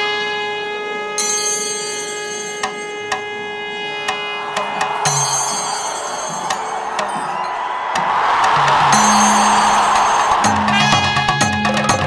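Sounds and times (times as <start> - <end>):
wind instrument long note: 0.0 - 7.6, 8.6 - 12.0.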